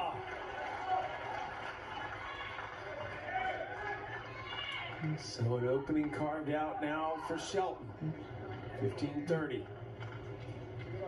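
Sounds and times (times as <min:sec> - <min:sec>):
television talking: 0:03.0 - 0:11.0.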